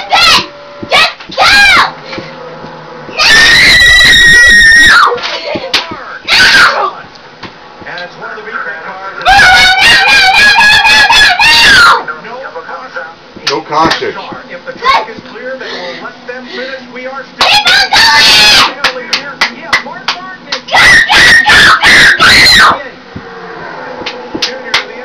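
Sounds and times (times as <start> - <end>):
girl screaming: 0.0 - 2.0, 3.2 - 5.2, 6.3 - 6.9, 9.3 - 12.0, 17.4 - 18.7, 20.7 - 22.8.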